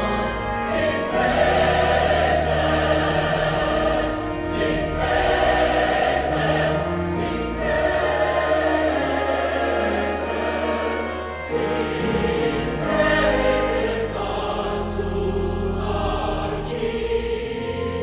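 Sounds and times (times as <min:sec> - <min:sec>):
mixed choir singing: 0:00.0 - 0:18.0
pipe organ low notes: 0:00.0 - 0:18.0.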